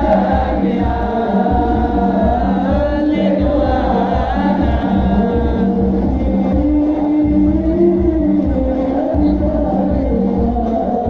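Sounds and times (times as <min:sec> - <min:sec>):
devotional chanting: 0:00.0 - 0:11.0
low drum beat: 0:00.0 - 0:11.0.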